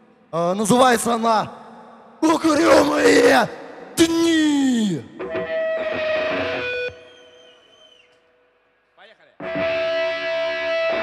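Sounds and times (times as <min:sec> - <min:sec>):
electric guitar chord: 0:09.4 - 0:11.0.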